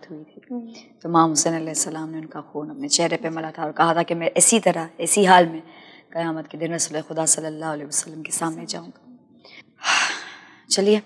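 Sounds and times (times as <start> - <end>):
woman talking: 0.9 - 5.6, 6.2 - 9.1, 9.9 - 11.0.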